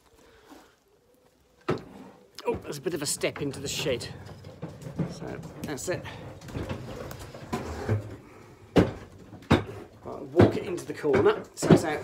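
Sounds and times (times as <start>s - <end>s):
lawnmower knocking and bumping: 2.4s - 8.1s, 8.7s - 12.0s.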